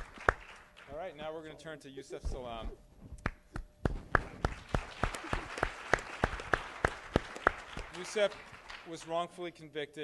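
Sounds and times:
close person clapping: 0:00.0 - 0:00.9, 0:03.2 - 0:09.0
audience applauding: 0:00.0 - 0:01.0, 0:04.1 - 0:09.1.

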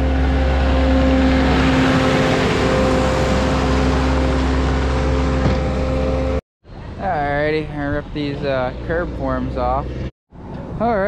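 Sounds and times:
diesel engine running: 0:00.0 - 0:10.8.

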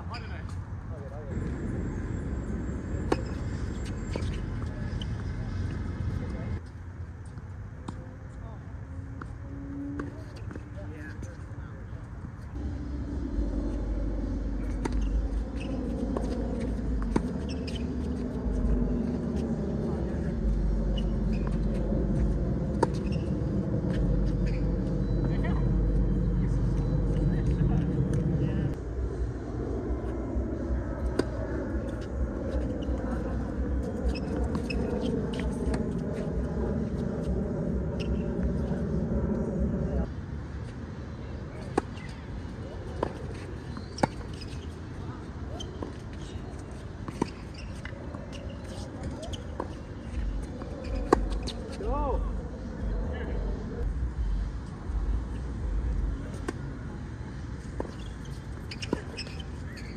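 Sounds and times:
vehicle engine rumble: 0:00.6 - 0:08.2, 0:09.0 - 0:59.9.

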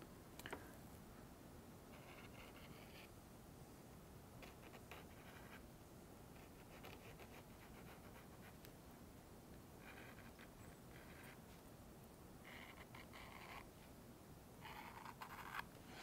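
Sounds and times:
felt pen scratching on wood: 0:01.9 - 0:03.1, 0:06.4 - 0:08.6, 0:09.8 - 0:11.4, 0:12.5 - 0:13.7, 0:14.6 - 0:16.0.

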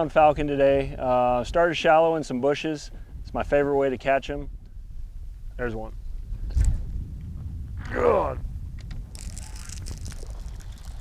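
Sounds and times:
wind rumble on microphone: 0:00.0 - 0:11.0
water splashing and sloshing: 0:09.2 - 0:11.0.

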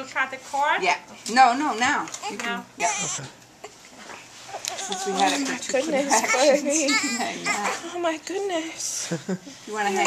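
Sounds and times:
newborn baby crying: 0:02.2 - 0:03.8, 0:04.5 - 0:08.2.

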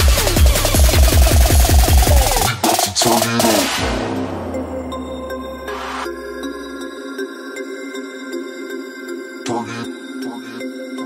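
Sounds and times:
electronic dance music: 0:00.0 - 0:08.2.

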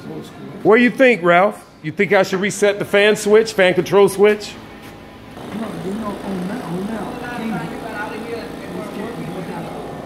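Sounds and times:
man talking: 0:00.0 - 0:04.6, 0:05.5 - 0:10.0
faint background hum: 0:00.0 - 0:10.0.

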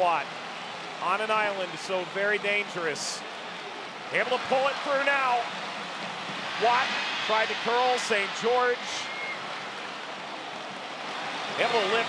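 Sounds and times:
stadium ambience: 0:00.0 - 0:12.0.

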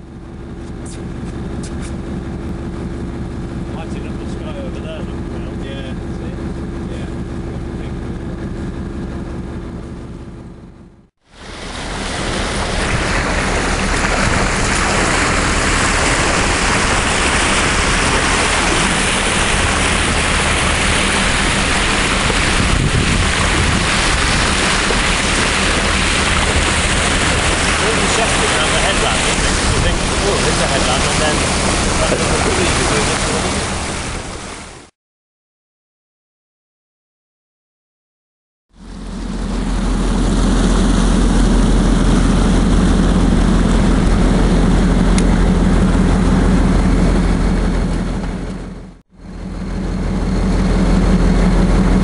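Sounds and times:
boat engine running: 0:00.0 - 0:34.9, 0:38.7 - 0:52.0
water rushing past hull: 0:11.2 - 0:34.9, 0:39.0 - 0:52.0
wind buffeting microphone: 0:11.4 - 0:34.6.

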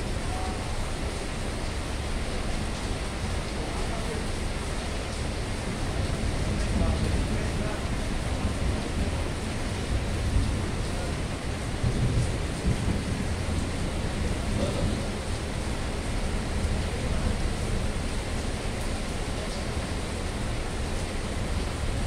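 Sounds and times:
heavy rain hissing: 0:00.0 - 0:22.0
constant low rumble: 0:00.1 - 0:22.0.

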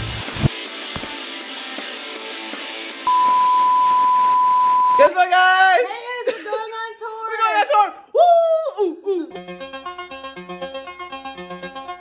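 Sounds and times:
electronic censor bleep: 0:03.1 - 0:05.2.

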